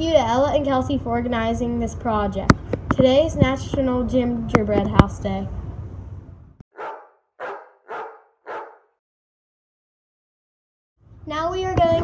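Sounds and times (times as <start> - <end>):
dog barking: 6.7 - 9.0.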